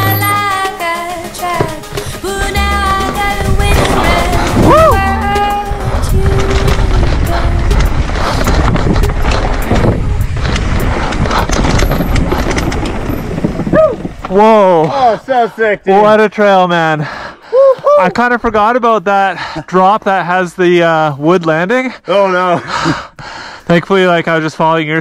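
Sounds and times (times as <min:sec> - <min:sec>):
background music with singing: 0:00.0 - 0:08.1
mountain bike on dirt trail: 0:00.0 - 0:16.5
bike knocking over roots: 0:06.1 - 0:15.0.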